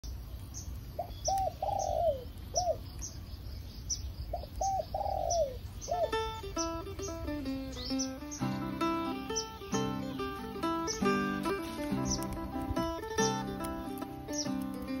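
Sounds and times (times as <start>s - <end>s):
bird cooing: 1.0s - 2.8s, 4.3s - 13.6s
plucked guitar music: 5.9s - 15.0s.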